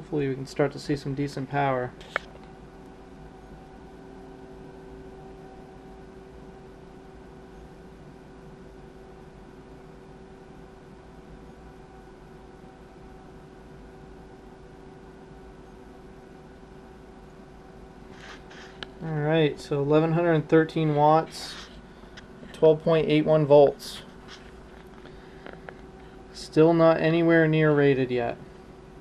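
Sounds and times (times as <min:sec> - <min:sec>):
faint electrical hum: 0:00.0 - 0:29.0.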